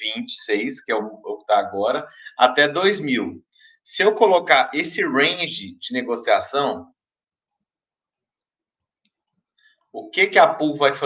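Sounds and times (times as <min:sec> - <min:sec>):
person speaking: 0:00.0 - 0:11.0
computer mouse clicks: 0:06.9 - 0:10.0.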